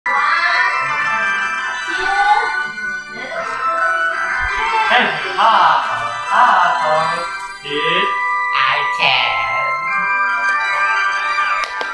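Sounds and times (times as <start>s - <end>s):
soundtrack music from television: 0.1s - 11.9s.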